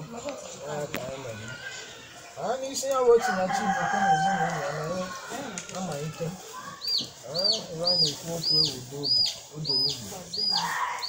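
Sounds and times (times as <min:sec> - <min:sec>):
rooster crowing: 0:03.2 - 0:05.2
bird chirping: 0:06.7 - 0:11.0.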